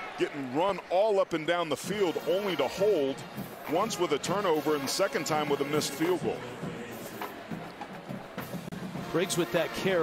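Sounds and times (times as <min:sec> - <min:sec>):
drums in stadium crowd: 0:00.0 - 0:10.0.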